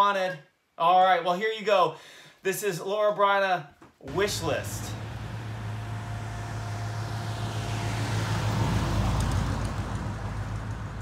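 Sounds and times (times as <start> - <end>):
truck engine driving past: 4.1 - 11.0.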